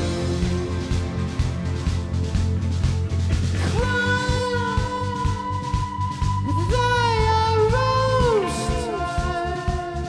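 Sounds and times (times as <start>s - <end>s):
bass guitar: 0.0s - 10.0s
electric guitar: 0.0s - 10.0s
steady drum beat: 0.0s - 10.0s.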